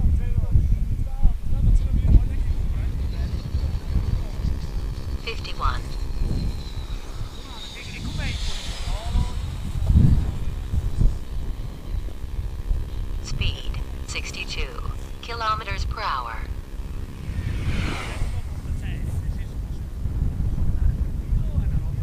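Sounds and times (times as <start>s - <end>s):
wind buffeting microphone: 0.0s - 15.2s, 16.4s - 22.0s
high whistling whoosh of glider: 2.3s - 12.4s, 16.6s - 20.1s.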